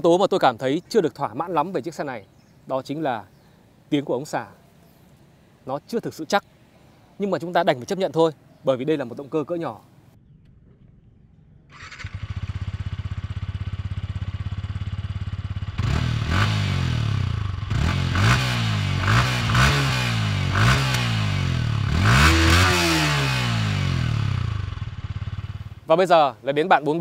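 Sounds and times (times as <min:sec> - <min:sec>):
motorcycle engine starting: 0:10.2 - 0:25.9
motorcycle engine idling and revving: 0:10.2 - 0:26.1.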